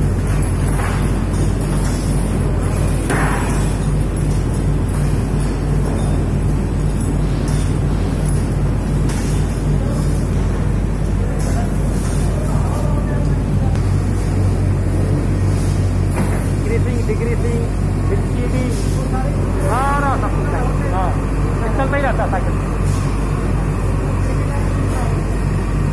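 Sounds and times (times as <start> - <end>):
machinery humming and whirring: 0.0 - 25.9.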